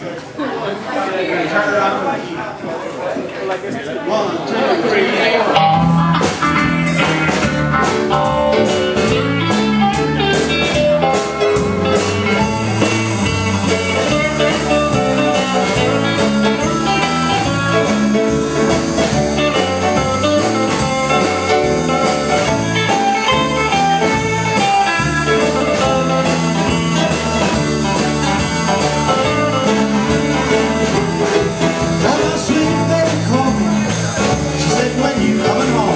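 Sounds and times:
electric guitar: 5.5s - 35.9s
drum kit: 5.6s - 35.9s.

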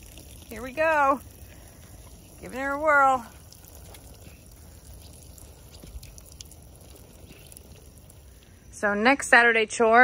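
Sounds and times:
water sprinkling onto soil: 0.0s - 9.4s.

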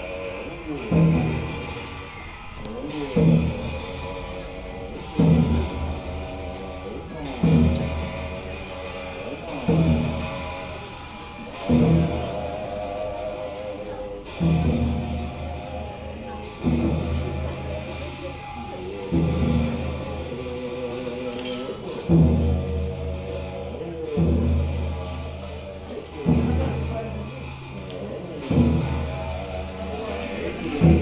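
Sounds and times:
sustained low tones: 0.0s - 21.3s, 21.9s - 31.0s
ringing cymbal crash strikes: 0.0s - 31.0s.

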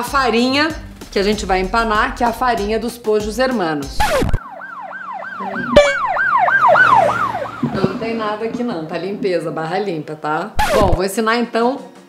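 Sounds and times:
siren yelping: 4.0s - 9.5s
short sharp sound: 5.4s - 9.0s.

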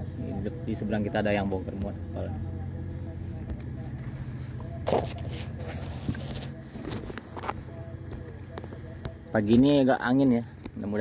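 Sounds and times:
low engine hum: 0.0s - 11.0s.

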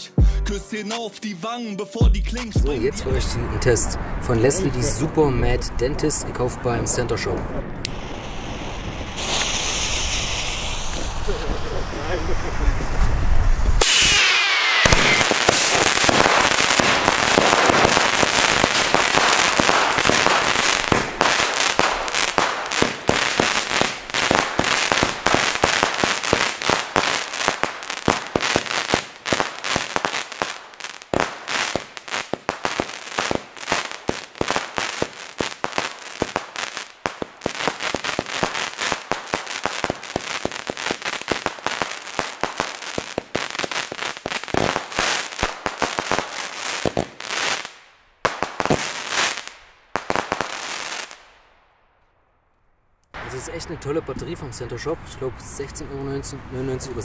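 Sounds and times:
sharp firework cracks: 7.8s - 12.3s, 13.6s - 52.1s
firework battery firing: 7.8s - 12.6s, 13.8s - 51.4s.

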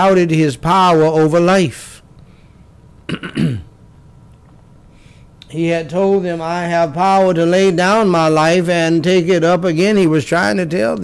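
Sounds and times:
man coughing: 3.1s - 3.7s.

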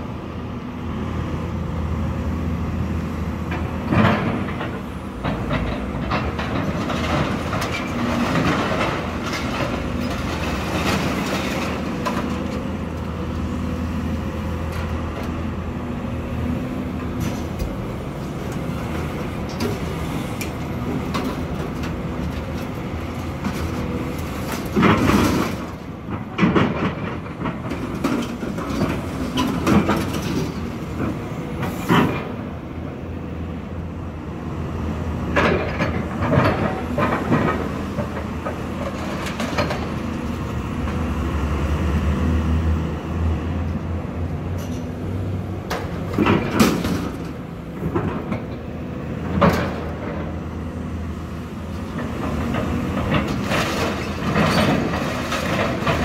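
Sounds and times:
excavator diesel engine running: 0.0s - 56.0s.

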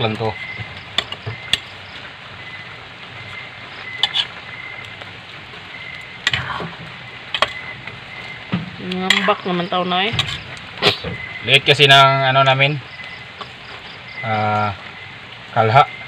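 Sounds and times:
cabbage sizzling in a pan: 0.0s - 16.0s
ladle clinking and scraping pan: 4.0s - 4.4s, 10.2s - 10.6s.

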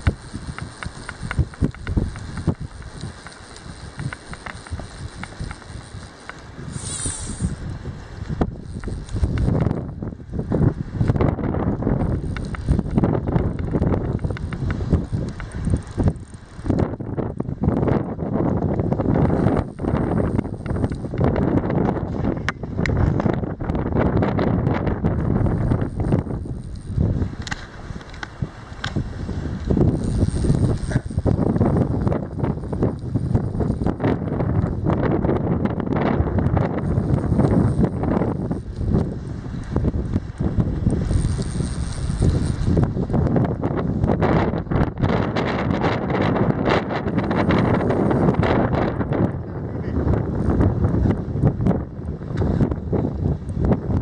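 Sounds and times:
fly reel ratchet clicking: 0.0s - 7.7s, 8.3s - 10.0s, 10.6s - 21.9s, 25.4s - 29.0s, 29.6s - 35.1s, 36.0s - 44.2s
wind buffeting microphone: 0.0s - 54.0s.

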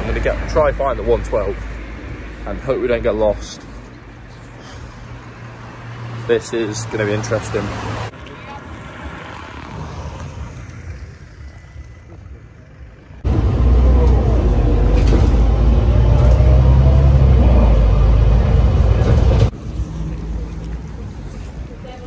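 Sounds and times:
bus engine and road rumble: 0.0s - 22.0s
quiet street noise: 0.0s - 22.0s.

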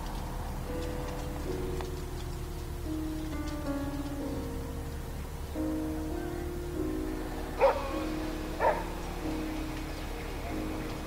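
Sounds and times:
background music: 0.0s - 11.0s
dog barking: 7.6s - 8.0s, 8.6s - 8.9s.

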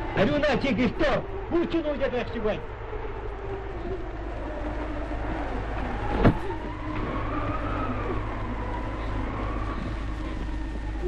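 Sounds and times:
film soundtrack hiss: 0.0s - 11.0s
low hum: 0.0s - 11.0s.

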